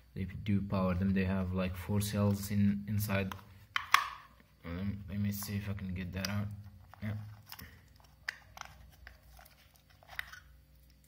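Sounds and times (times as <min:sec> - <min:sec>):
low steady hum: 0:00.0 - 0:11.0
plastic crinkling and clicking: 0:05.3 - 0:11.0.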